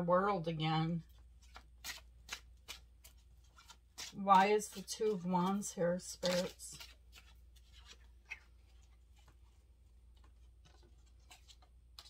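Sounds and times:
cards shuffled by hand: 1.1 - 12.0.

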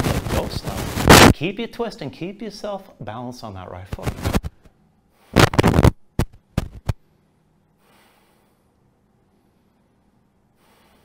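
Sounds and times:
quiet breathing: 7.0 - 11.0
forceful exhales: 7.8 - 8.7, 10.6 - 11.0.

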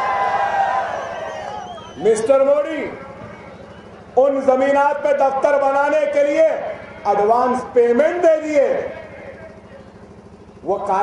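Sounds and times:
steady low hum: 0.0 - 11.0
man speaking through loudspeakers: 2.0 - 11.0.

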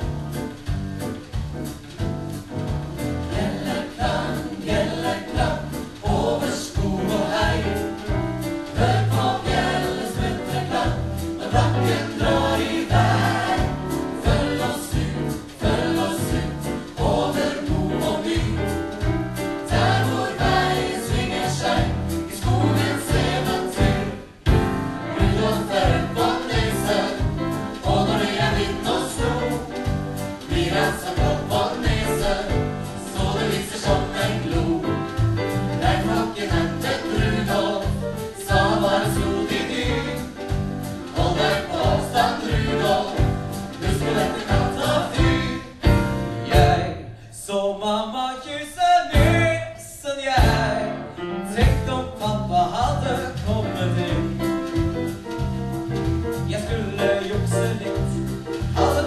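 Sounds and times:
bass line: 0.0 - 47.1, 49.2 - 49.6, 50.4 - 59.0
drum kit beat: 0.0 - 47.1, 49.1 - 49.6, 50.4 - 59.0
piano: 0.0 - 59.0
choir singing: 3.3 - 47.2.

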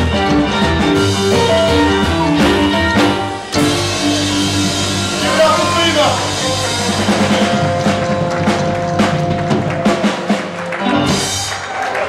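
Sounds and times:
drum and cymbal hits: 0.0 - 11.6
rockabilly band closing chord: 0.0 - 12.0.

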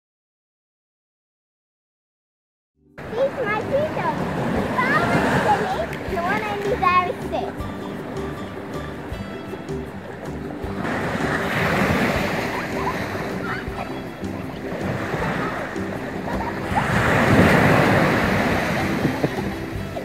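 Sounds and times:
background music with held notes: 2.8 - 20.0
sea waves breaking on shore: 3.0 - 20.0
sliding wavering calls: 3.2 - 20.0.

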